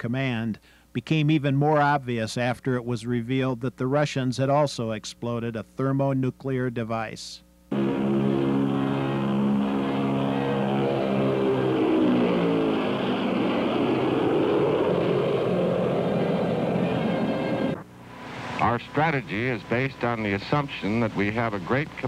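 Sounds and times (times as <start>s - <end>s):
piston engines droning overhead: 7.7s - 22.0s.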